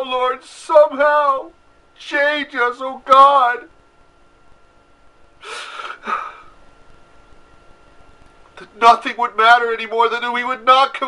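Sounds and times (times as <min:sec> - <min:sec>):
man gasping breaths while weeping: 0:05.4 - 0:06.6.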